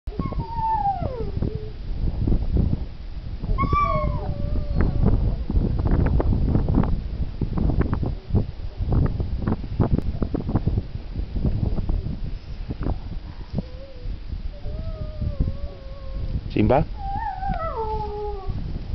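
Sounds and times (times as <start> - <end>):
dog whining: 0.1 - 1.8, 3.6 - 5.1, 13.6 - 16.4, 17.0 - 18.6.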